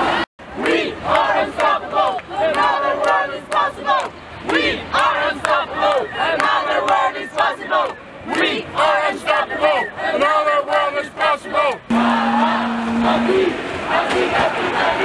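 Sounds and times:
crowd shouting and chanting: 0:00.0 - 0:15.0.

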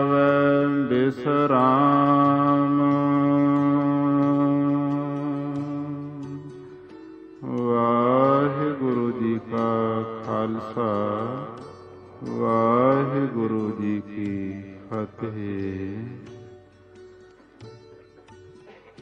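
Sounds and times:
man chanting melodically: 0:07.4 - 0:16.4.

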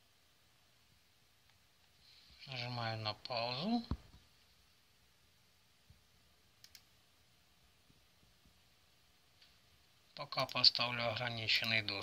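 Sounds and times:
faint computer mouse clicks: 0:06.6 - 0:06.9.

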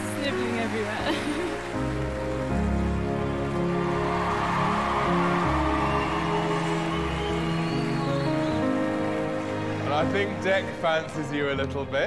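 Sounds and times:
audience applause: 0:00.0 - 0:11.4.

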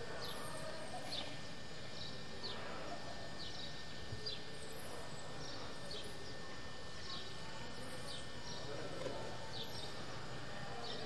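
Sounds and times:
faint distant voices: 0:00.0 - 0:11.0.

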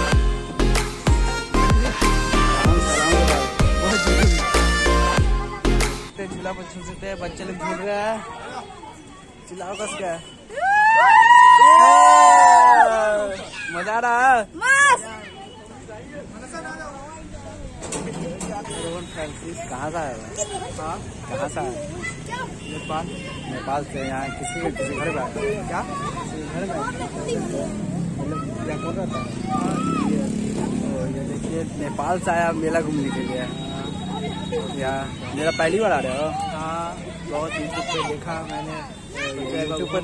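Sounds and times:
men talking and laughing: 0:00.0 - 0:05.9
boys yelling a cheer: 0:09.8 - 0:13.9, 0:28.3 - 0:30.3.

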